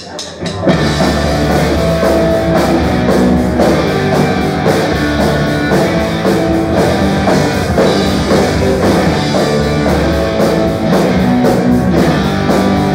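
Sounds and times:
drum kit: 0:00.0 - 0:12.9
electric guitars: 0:00.5 - 0:12.9.

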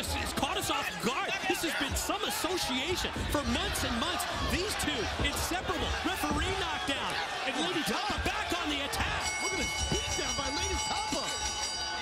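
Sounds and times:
voices shouting: 0:00.0 - 0:12.0.

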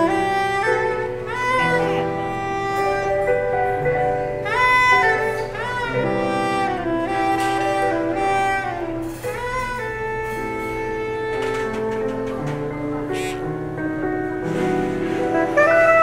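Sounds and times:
keyboard: 0:00.0 - 0:16.0
soprano saxophone melody: 0:00.0 - 0:16.0.

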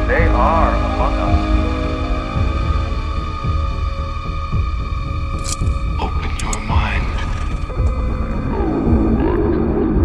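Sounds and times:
dark ambient drone music: 0:00.0 - 0:10.0.

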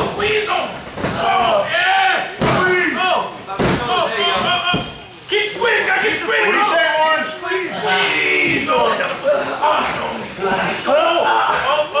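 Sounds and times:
people shouting: 0:00.0 - 0:12.0.

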